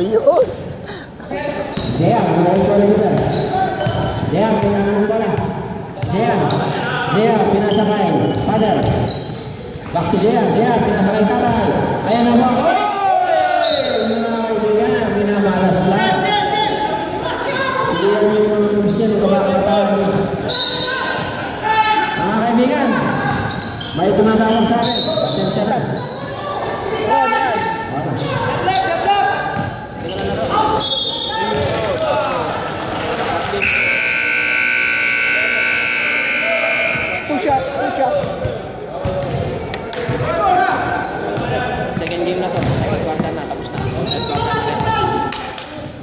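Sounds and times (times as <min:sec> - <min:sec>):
players' voices: 0:00.0 - 0:46.0
scoreboard buzzer: 0:33.6 - 0:37.4.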